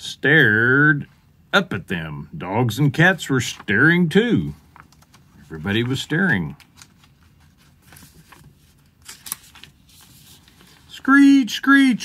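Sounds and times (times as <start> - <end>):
picture book rustling: 2.9 - 12.0
paper rustling: 3.2 - 11.2.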